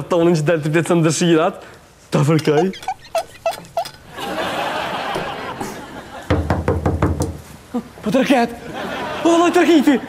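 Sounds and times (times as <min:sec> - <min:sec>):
rapid knocking on door: 0:06.3 - 0:07.4.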